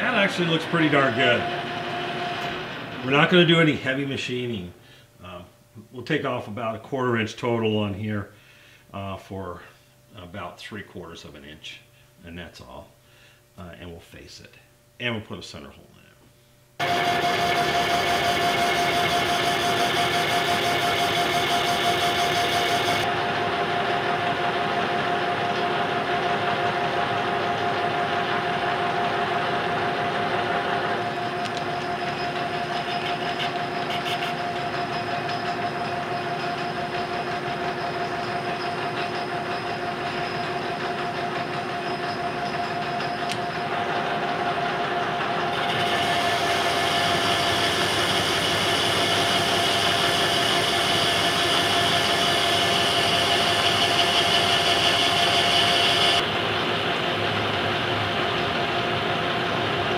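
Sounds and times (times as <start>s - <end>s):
metal lathe whine: 0.0s - 3.4s, 16.8s - 59.9s.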